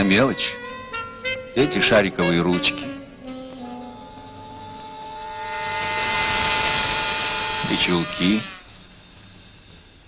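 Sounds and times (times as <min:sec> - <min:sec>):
film soundtrack sustained note: 0:00.0 - 0:10.0
hissing swell: 0:03.6 - 0:10.0.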